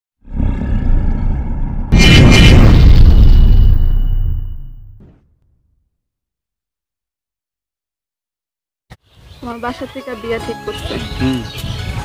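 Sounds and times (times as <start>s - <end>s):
deep roaring rumble: 0.2s - 4.1s
loud blast: 1.9s - 5.1s.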